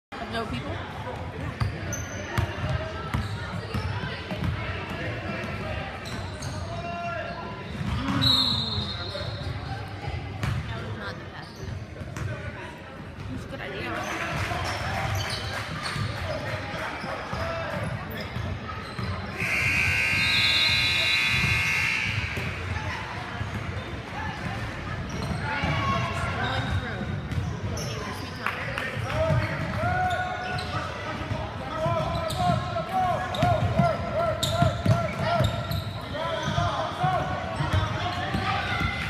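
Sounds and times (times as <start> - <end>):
voices echoing in hall: 0.2 - 39.0
loud shrill steady tone: 19.4 - 22.4.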